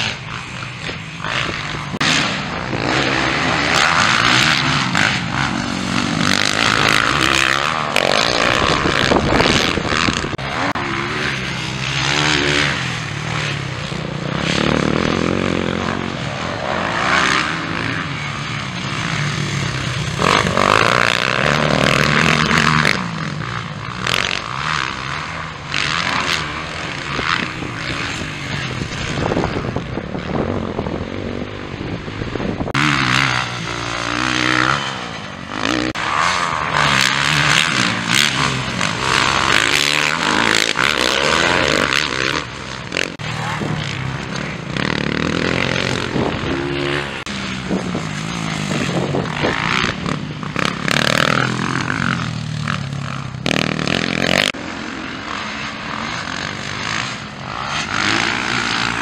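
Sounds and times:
motocross bike engines revving: 0:00.0 - 0:59.0.

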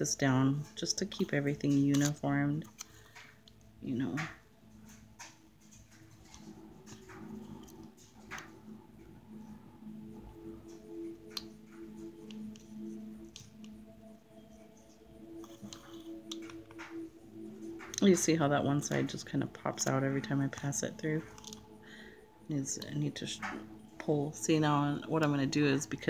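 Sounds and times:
faint background music: 0:00.0 - 0:26.0.

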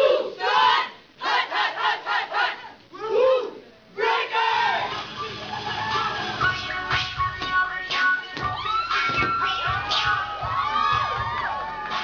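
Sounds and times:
group shouting rhythmic chant: 0:00.0 - 0:02.8.

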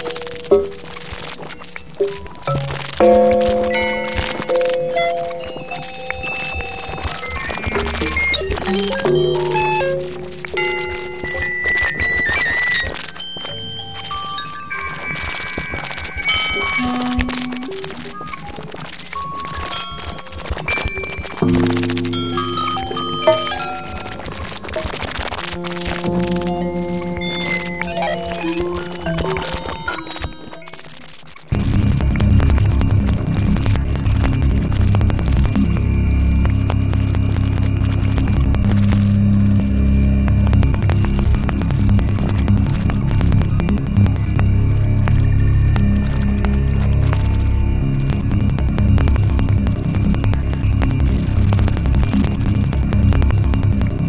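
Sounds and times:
held electronic tones: 0:00.0 - 0:54.0
soft crackle of clicks: 0:00.0 - 0:54.0.

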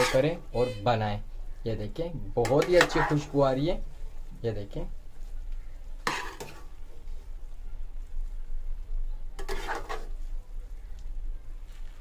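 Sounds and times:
spatula scraping steel pot: 0:00.0 - 0:00.4, 0:02.4 - 0:03.4, 0:06.0 - 0:06.7, 0:09.4 - 0:10.2.

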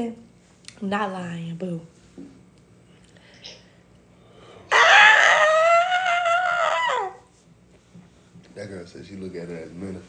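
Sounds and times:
rooster crowing: 0:04.7 - 0:07.3.

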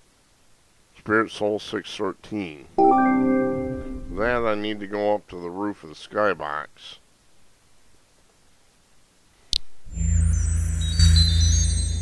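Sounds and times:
synthesized teleport sound: 0:02.8 - 0:04.6.

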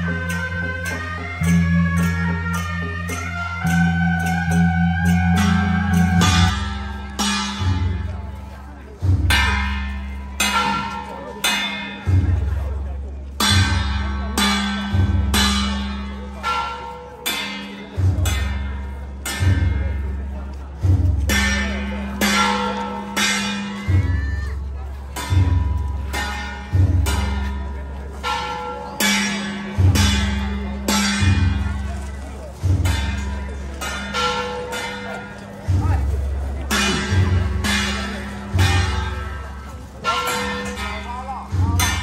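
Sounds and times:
ringing metal instrument struck: 0:00.0 - 0:42.0
big drum thuds: 0:03.7 - 0:16.9, 0:17.7 - 0:28.0, 0:29.0 - 0:42.0.

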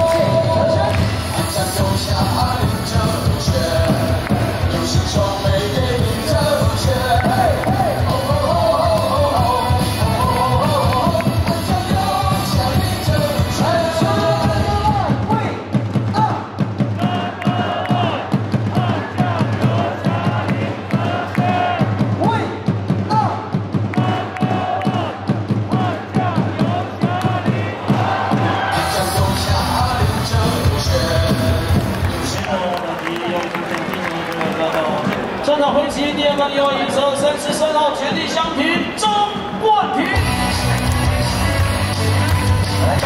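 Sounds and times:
cheer song over loudspeakers: 0:00.0 - 0:43.0
crowd chanting and cheering: 0:00.0 - 0:43.0.

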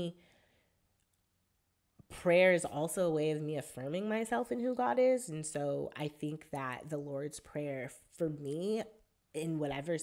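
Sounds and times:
woman speaking: 0:02.1 - 0:10.0.

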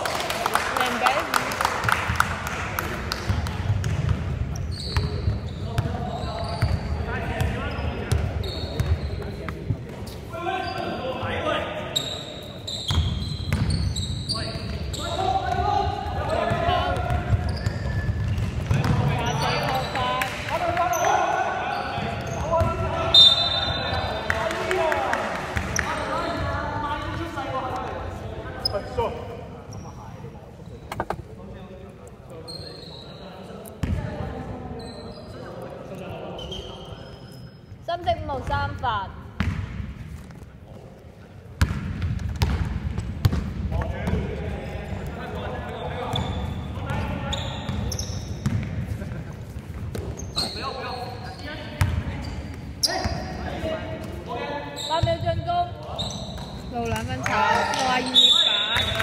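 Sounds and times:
shoes squeaking: 0:04.5 - 0:07.0, 0:07.6 - 0:11.0, 0:11.9 - 0:20.2, 0:28.6 - 0:31.4, 0:32.3 - 0:33.9, 0:36.2 - 0:38.7, 0:45.0 - 0:48.6, 0:49.5 - 0:57.2
basketball bouncing on hardwood floor: 0:41.6 - 0:44.2.

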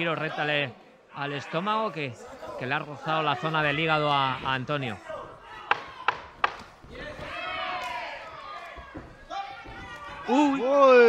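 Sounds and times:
loud shouting: 0:02.4 - 0:11.0.

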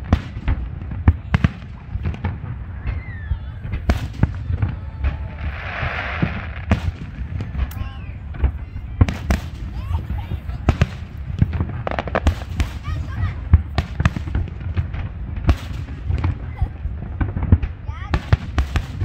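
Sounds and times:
firework shells bursting: 0:03.7 - 0:19.0.

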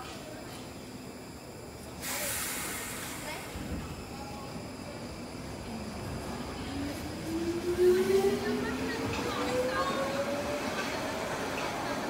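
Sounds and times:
train running gear rumble: 0:01.9 - 0:12.0.

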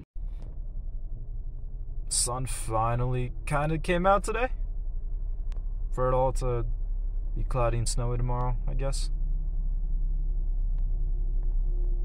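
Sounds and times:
car cabin low rumble: 0:00.0 - 0:12.0
faint steady hum: 0:00.2 - 0:12.0.

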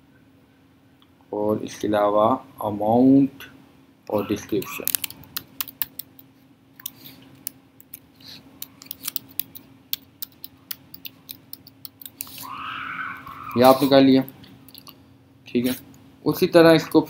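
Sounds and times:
faint steady hum: 0:00.0 - 0:17.0
keyboard keystrokes: 0:04.6 - 0:06.2, 0:08.6 - 0:12.3.

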